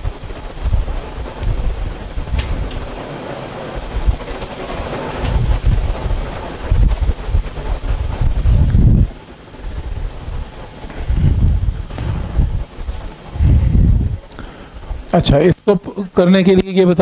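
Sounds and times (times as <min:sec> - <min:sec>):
low rumbling handling noise: 0:00.0 - 0:15.7
soft background hiss: 0:00.0 - 0:17.0.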